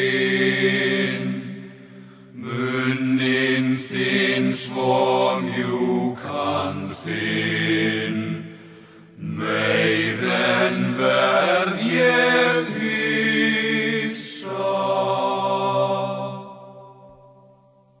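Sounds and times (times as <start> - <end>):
two voices singing folk song: 2.4 - 16.6.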